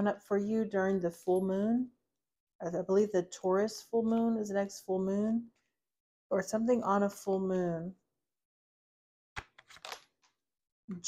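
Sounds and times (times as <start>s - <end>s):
cards clicking on tabletop: 9.4s - 10.1s
cards rustling: 9.4s - 10.1s.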